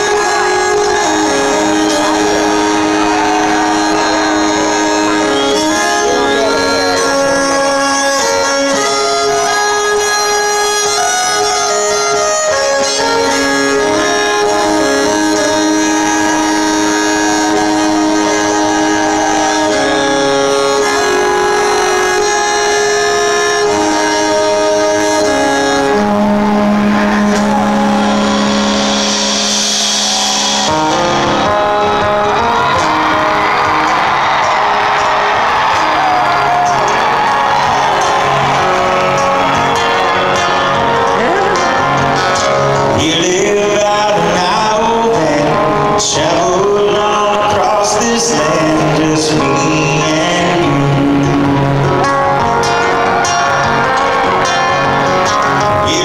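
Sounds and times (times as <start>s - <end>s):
fiddle playing slow melody: 0.0s - 56.0s.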